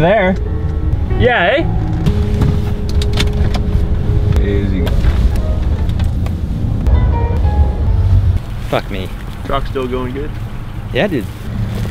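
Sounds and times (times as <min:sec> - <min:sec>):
truck rumbling: 0:00.0 - 0:11.9
wind buffeting microphone: 0:00.0 - 0:11.9.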